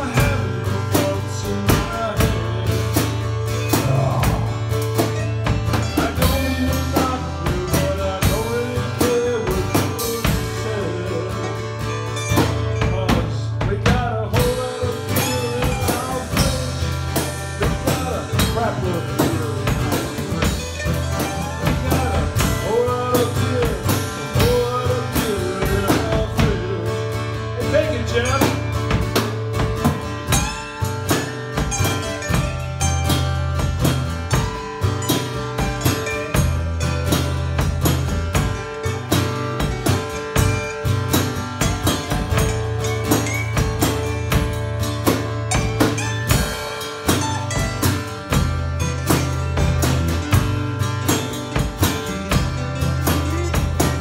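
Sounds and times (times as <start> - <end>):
acoustic guitars strummed: 0.0 - 54.0
drum kit steady beat: 0.0 - 54.0.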